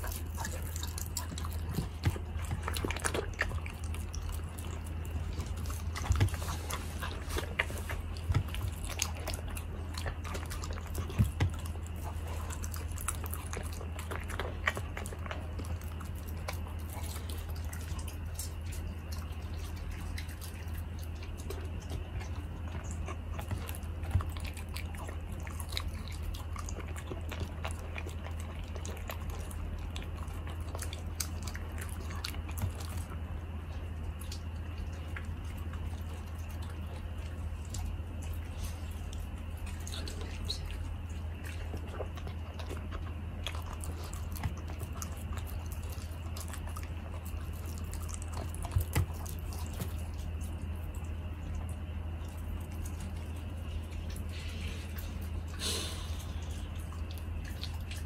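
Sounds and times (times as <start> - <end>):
puppy chewing meat: 0.0 - 58.0
steady low hum: 0.0 - 58.0.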